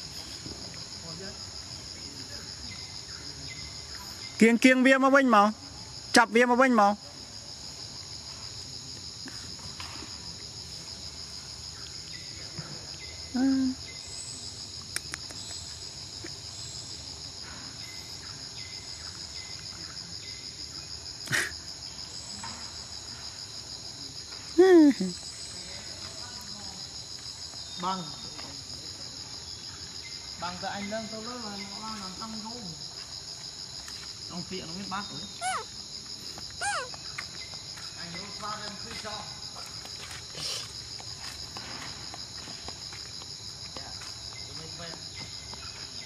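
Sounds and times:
insects buzzing: 0:00.0 - 0:46.0
short falling voice-like calls: 0:35.4 - 0:35.7, 0:36.6 - 0:36.9.

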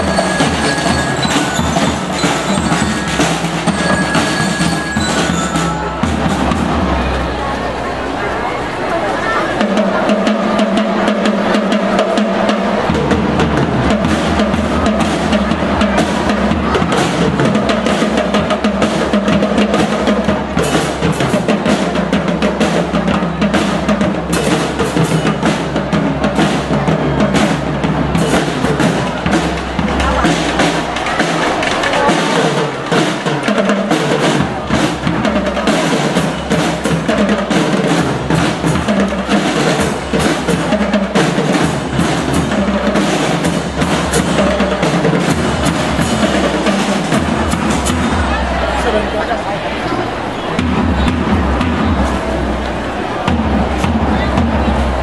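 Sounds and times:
snare and bass drums marching beat: 0:00.0 - 0:07.2, 0:09.6 - 0:49.4, 0:50.5 - 0:55.0
drum and lyre band playing: 0:00.0 - 0:07.9, 0:09.0 - 0:55.0.

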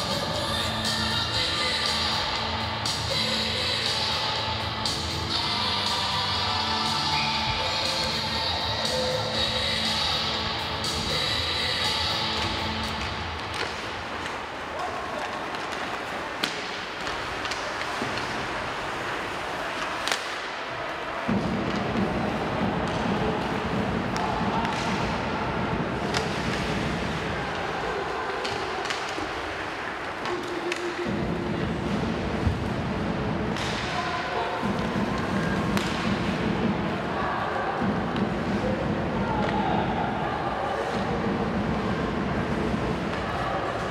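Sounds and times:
arena music over loudspeakers: 0:00.0 - 0:14.2, 0:34.2 - 0:43.9
noisy arena background: 0:00.0 - 0:43.9
hockey sticks and puck clacking: 0:10.8 - 0:32.8, 0:33.5 - 0:36.8, 0:40.7 - 0:43.9.

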